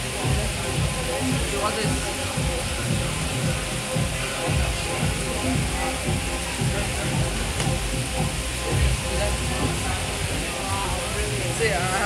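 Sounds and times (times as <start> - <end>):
background music: 0.0 - 12.0
indistinct voices: 0.0 - 12.0
steady hiss: 0.0 - 12.0.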